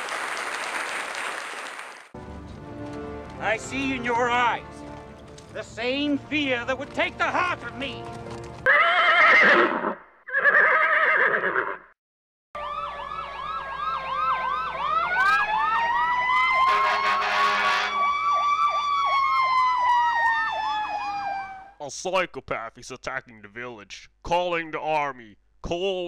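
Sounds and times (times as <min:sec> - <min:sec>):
horse whinnying: 0:08.6 - 0:11.9
police siren yelp and wail: 0:12.6 - 0:21.8.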